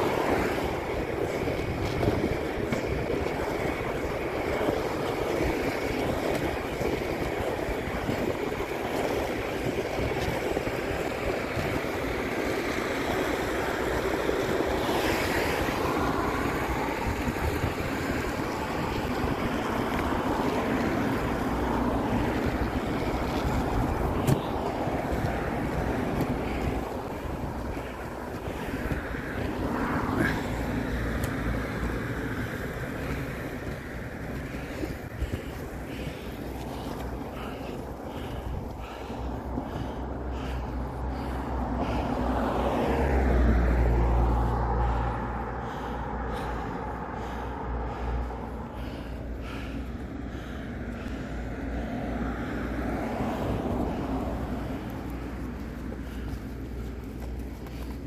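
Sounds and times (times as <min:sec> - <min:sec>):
wind on microphone: 0:00.0 - 0:40.5
road traffic passing: 0:00.0 - 0:58.0
skate wheels rolling on asphalt: 0:00.0 - 0:58.0.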